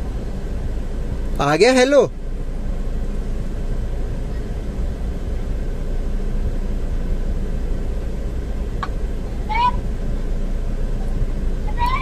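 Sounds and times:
car engine idling rumble: 0.0 - 12.0.

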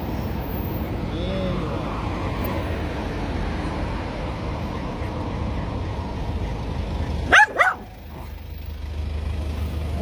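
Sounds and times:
dog barking: 7.3 - 8.3.

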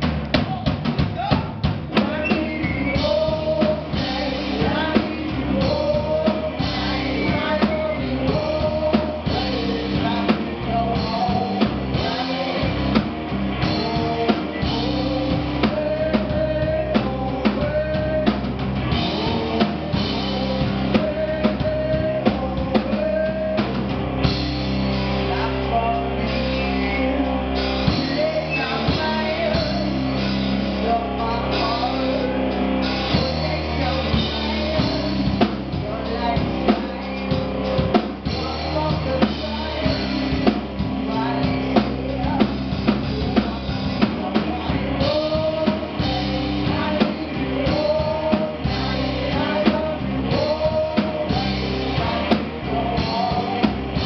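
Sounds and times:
live rock band playing: 0.0 - 54.0
regular drum beat: 0.0 - 54.0.

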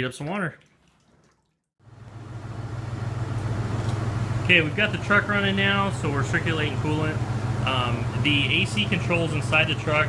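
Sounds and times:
water running into bucket: 0.0 - 1.7
truck engine idling: 1.8 - 10.0.

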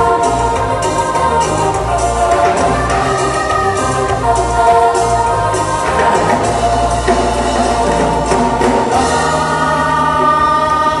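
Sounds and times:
deep bass notes: 0.0 - 11.0
loud live band music: 0.0 - 11.0.

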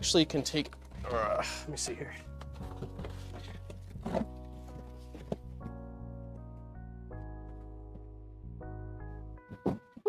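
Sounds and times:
packaging knocks and rustles: 2.4 - 5.8.

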